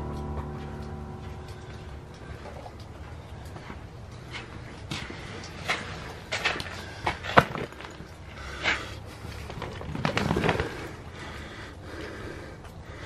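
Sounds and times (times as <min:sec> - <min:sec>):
low background noise: 0:00.0 - 0:13.0.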